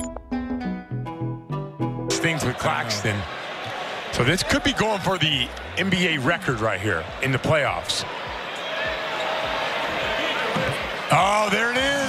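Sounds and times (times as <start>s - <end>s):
arena crowd hubbub: 2.1s - 12.0s.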